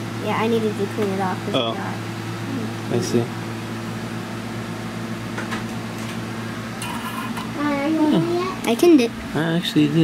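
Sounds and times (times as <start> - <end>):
fan hum: 0.0 - 10.0.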